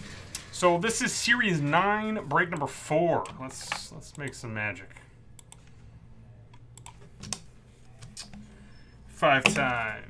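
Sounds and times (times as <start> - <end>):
computer mouse clicks: 5.4 - 5.7, 6.5 - 8.6
computer keyboard clicks: 6.5 - 8.4.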